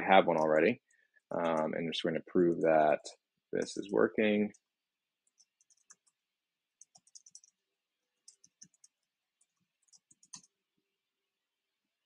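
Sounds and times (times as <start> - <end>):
typing on computer keyboard: 4.5 - 7.6, 8.2 - 10.6.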